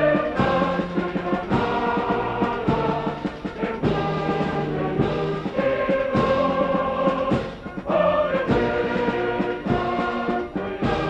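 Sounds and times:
orchestral music with brass: 0.0 - 11.0
slow drum beat: 0.0 - 11.0.

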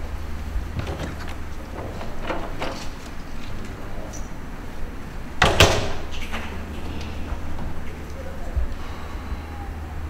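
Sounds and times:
low murmur of large room: 0.0 - 10.0.

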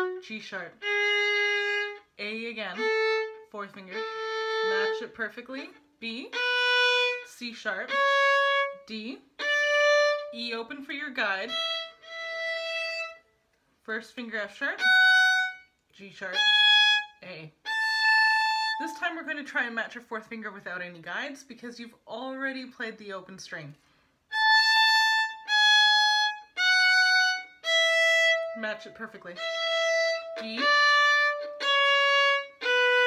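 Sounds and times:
violin sustained bowed note: 0.0 - 5.1, 6.3 - 10.6, 11.4 - 13.2, 16.3 - 19.3, 24.3 - 33.0.

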